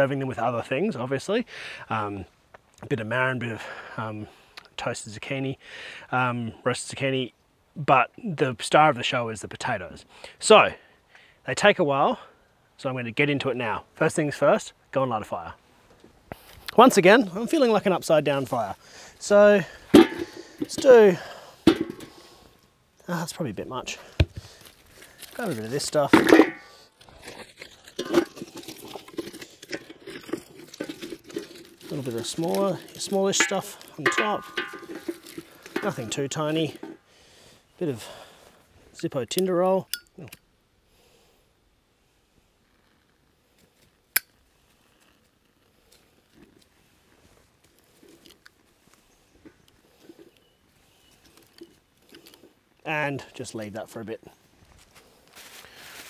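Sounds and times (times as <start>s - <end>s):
wooden sticks knocking together: 19.9s - 20.9s, 21.6s - 22.2s, 33.0s - 37.0s
kindling ticks and rustles: 24.4s - 37.0s, 42.6s - 56.0s.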